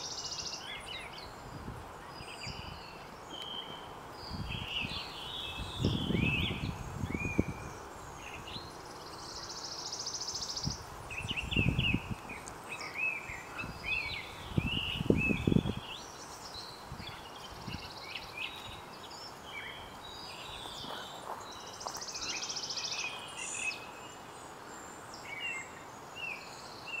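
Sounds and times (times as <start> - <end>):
outdoor hiss: 0.0 - 27.0
songbirds chirping: 0.0 - 27.0.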